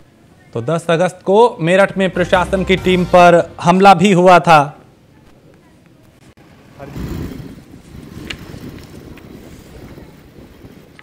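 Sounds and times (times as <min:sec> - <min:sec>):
low traffic rumble: 0:00.0 - 0:11.0
wind buffeting microphone: 0:06.8 - 0:11.0.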